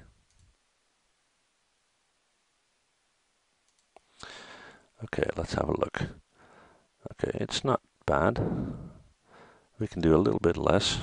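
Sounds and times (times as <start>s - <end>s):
faint mouse click: 3.6s - 4.3s.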